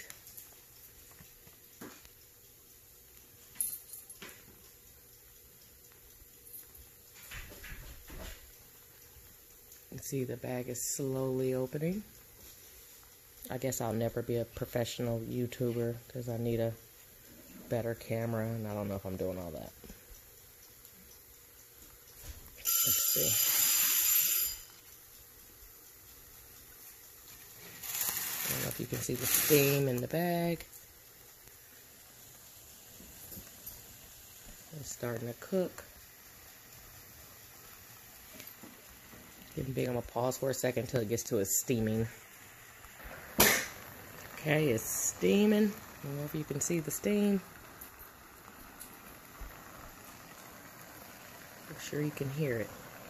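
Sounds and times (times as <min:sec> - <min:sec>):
clicks and crackles: 0:00.0 - 0:10.0, 0:24.6 - 0:53.0
faint chemical hiss: 0:00.0 - 0:53.0
faint steady fizz: 0:00.0 - 0:53.0
burst of noise: 0:42.8 - 0:44.7.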